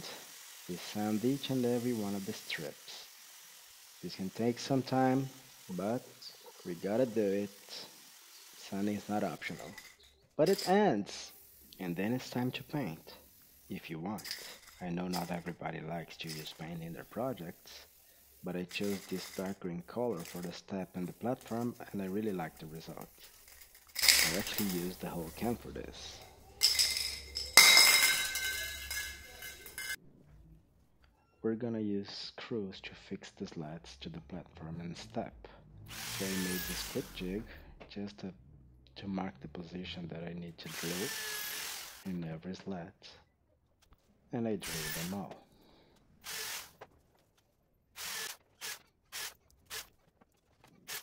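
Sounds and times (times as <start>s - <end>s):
metallic ring: 26.6s - 30.0s
electric drill boring wood: 35.9s - 37.1s, 40.7s - 42.0s, 46.2s - 46.7s, 48.0s - 49.8s.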